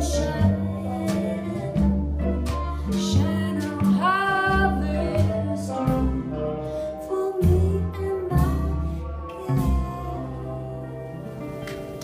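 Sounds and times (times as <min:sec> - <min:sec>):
guitar accompaniment: 0:00.0 - 0:12.0
upright bass notes: 0:00.0 - 0:12.0.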